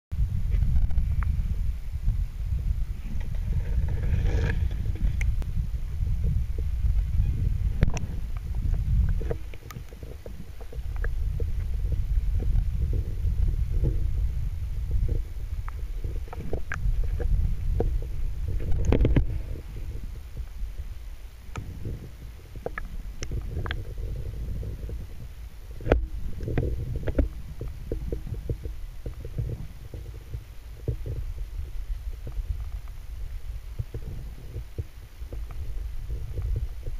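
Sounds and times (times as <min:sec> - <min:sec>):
underwater water rumble: 0:00.1 - 0:36.9
small clicks and ticks: 0:00.5 - 0:01.4, 0:03.0 - 0:05.5, 0:07.7 - 0:14.2, 0:14.8 - 0:36.9
sharp underwater clicks: 0:07.8 - 0:11.5, 0:21.5 - 0:23.9.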